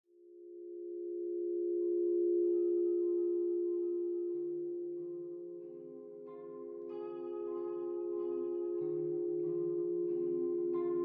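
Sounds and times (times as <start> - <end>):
musical drone: 2.3 - 11.0.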